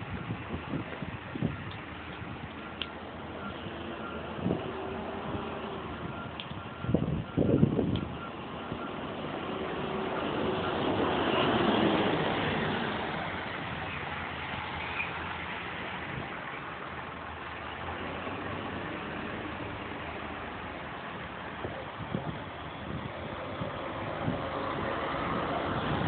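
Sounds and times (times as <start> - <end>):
engines idling: 0.7 - 26.0
diesel bus driving past: 2.5 - 26.0.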